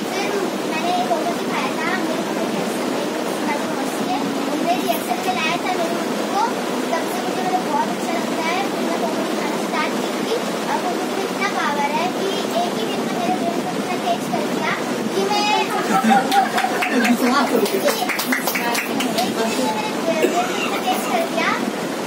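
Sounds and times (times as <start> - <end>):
girl speaking: 0.0 - 21.8
steady background hiss: 0.0 - 22.0.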